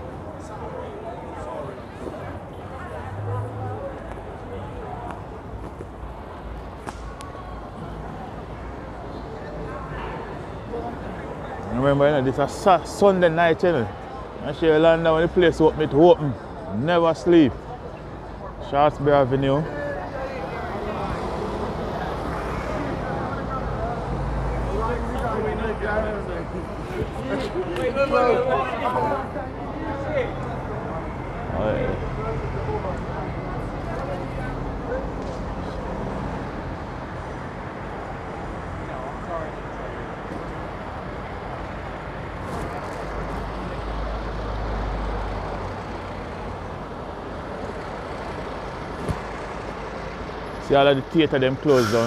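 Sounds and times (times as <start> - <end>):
car engines passing: 0.0 - 52.0
faint chatter of passers-by: 0.0 - 52.0.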